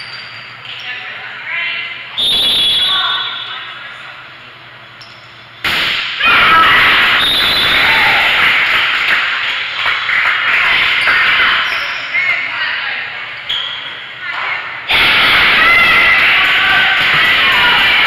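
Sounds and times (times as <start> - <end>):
crowd shouting and cheering: 5.9 - 12.5, 14.2 - 18.0.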